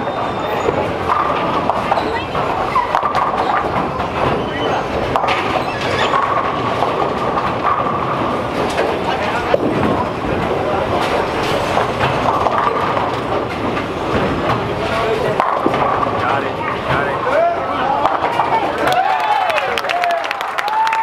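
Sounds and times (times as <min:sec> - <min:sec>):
bowling pins crashing: 0:00.0 - 0:20.1
murmur of voices: 0:00.0 - 0:20.3
bowling balls rolling on lanes: 0:00.0 - 0:20.8.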